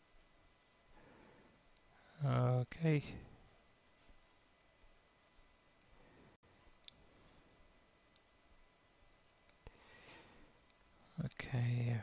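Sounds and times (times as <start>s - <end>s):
computer mouse clicks: 2.6s - 6.0s.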